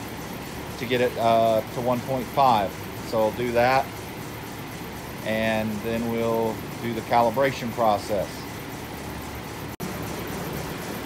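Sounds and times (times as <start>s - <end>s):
ventilation fans rushing: 0.0s - 11.0s.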